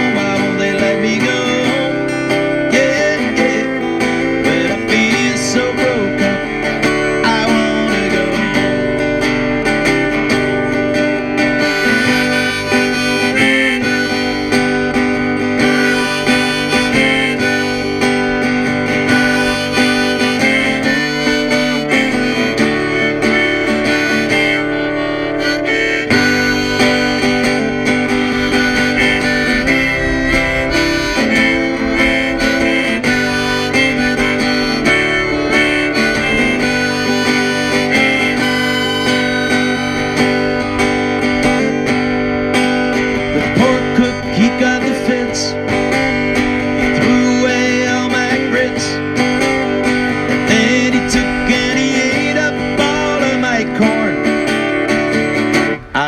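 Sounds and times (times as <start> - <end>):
harmonica: 0.0 - 56.0
strummed acoustic guitar: 0.0 - 56.0.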